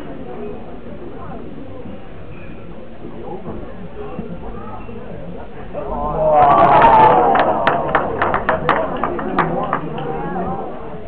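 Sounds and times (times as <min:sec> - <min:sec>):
spectators calling out: 0:05.7 - 0:10.8
scattered hand claps: 0:06.4 - 0:10.6.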